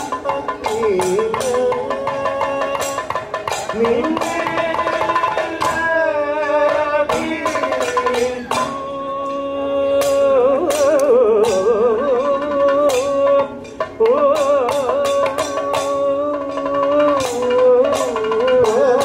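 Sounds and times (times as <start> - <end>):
drum strokes: 0.0 - 19.0
ornamented vocal melody: 0.0 - 19.0.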